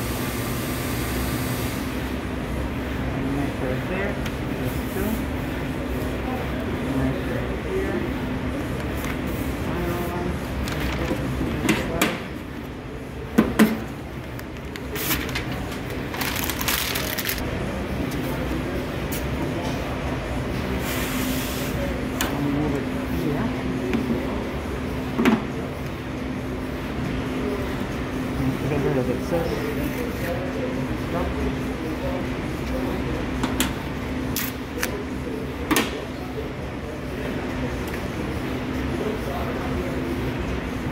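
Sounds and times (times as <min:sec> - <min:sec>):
steady hum: 0:00.0 - 0:40.9
paper rustling: 0:14.6 - 0:17.4.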